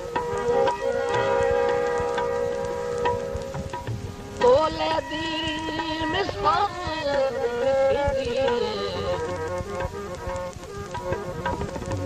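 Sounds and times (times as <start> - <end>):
harmonium sustained chord: 0.0 - 12.0
light drum strokes: 0.2 - 6.3.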